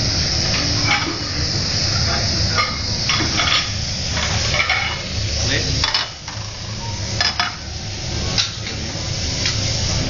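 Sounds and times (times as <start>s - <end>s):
food sizzling: 0.0s - 10.0s.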